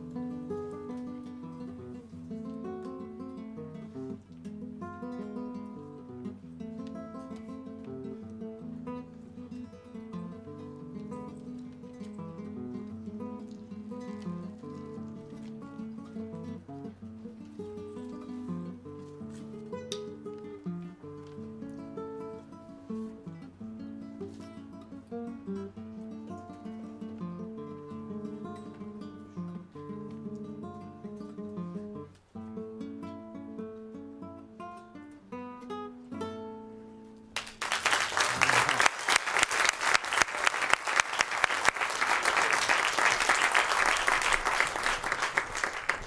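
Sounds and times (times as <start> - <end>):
acoustic guitar playing: 0.0 - 37.4
audience applauding: 37.4 - 46.0.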